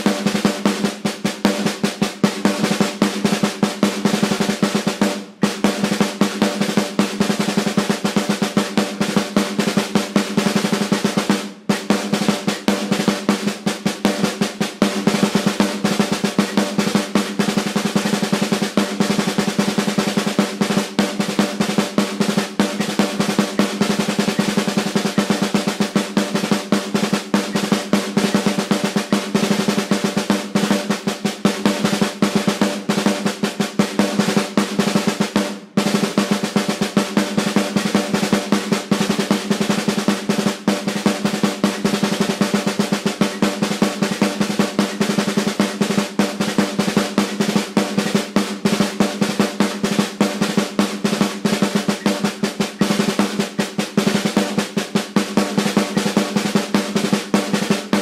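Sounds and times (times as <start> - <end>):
snare drum rolls with sticks: 0.0 - 58.0.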